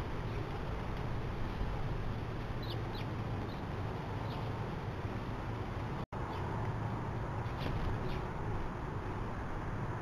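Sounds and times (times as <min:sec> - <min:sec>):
low background rumble: 0:00.0 - 0:10.0
sparrows chirping: 0:02.6 - 0:04.6, 0:06.2 - 0:06.5, 0:07.4 - 0:08.4.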